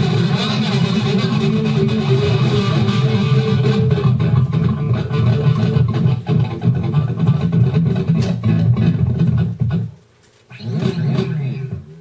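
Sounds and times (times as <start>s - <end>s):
electric guitar run of notes: 0.0s - 12.0s.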